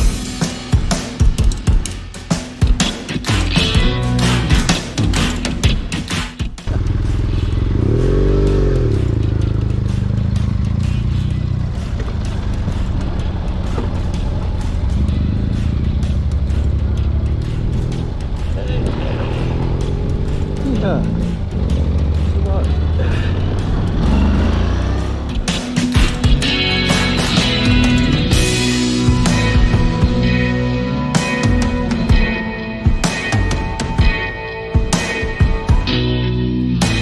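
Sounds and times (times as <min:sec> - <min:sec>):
motorcycle engine revving: 0:06.6 - 0:32.3.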